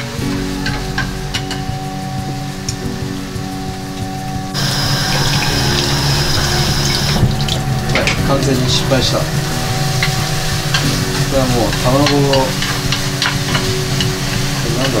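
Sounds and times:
background music with steady beat: 0.0 - 15.0
egg sizzling in a pan: 4.5 - 15.0.

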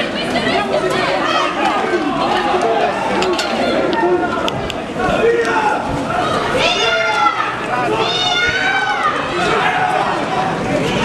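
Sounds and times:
crowd voices overlapping: 0.0 - 11.0.

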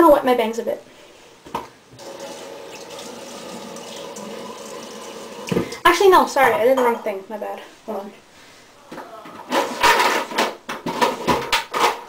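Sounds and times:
household items clattering: 9.2 - 12.0.

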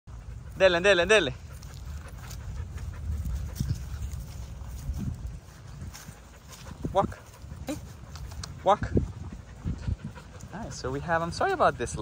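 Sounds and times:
dog panting: 0.1 - 12.0
steady low rumble: 0.1 - 12.0.

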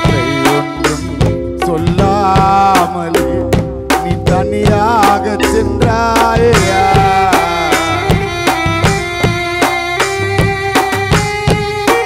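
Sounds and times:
electronic keyboard melody: 0.0 - 12.0
hand drum beat: 0.0 - 12.0.

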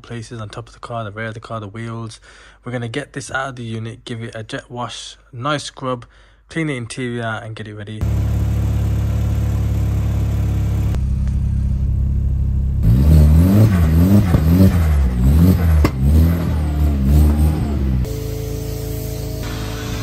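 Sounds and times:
car engine idling and revving: 8.0 - 20.0
sharp exhaust crack: 12.8 - 20.0.

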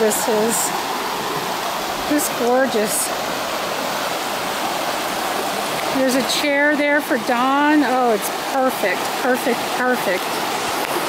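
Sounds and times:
creek water rushing over rocks: 0.0 - 11.0.

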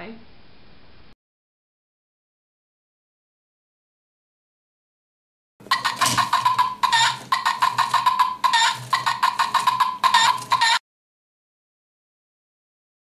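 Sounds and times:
electronic chick call alarm: 5.7 - 10.8.

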